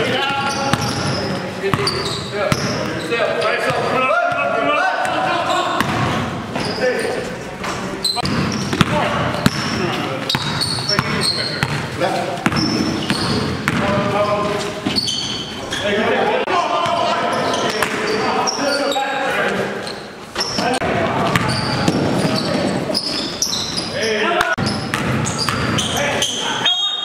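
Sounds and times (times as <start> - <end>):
shoe squeaks: 0.0 - 3.8, 5.2 - 5.9, 6.5 - 16.1, 16.9 - 27.0
basketball bouncing on hard court: 0.2 - 2.9, 5.0 - 6.3, 8.2 - 14.1, 21.0 - 22.6, 24.6 - 25.9.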